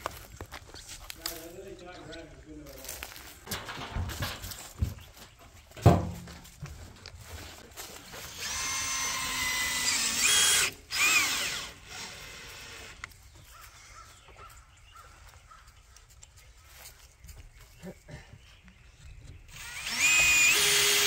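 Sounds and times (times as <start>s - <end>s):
cordless drill motor whine: 8.2s - 13.1s, 19.5s - 21.0s.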